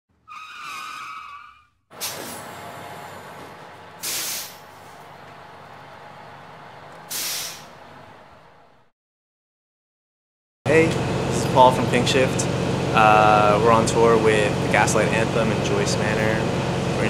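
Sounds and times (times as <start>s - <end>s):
vehicle engine running: 1.9s - 8.9s, 10.7s - 17.0s
air brake hisses: 2.0s - 2.6s, 4.0s - 4.7s, 7.1s - 7.8s.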